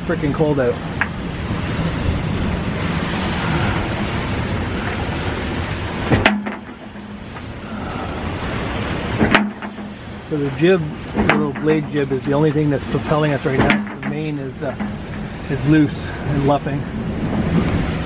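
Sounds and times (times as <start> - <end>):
wind and sea rushing: 0.0 - 18.0
low rumble: 0.8 - 18.0
sharp knocks: 6.0 - 7.5, 9.1 - 10.4, 11.0 - 12.4, 13.5 - 15.5.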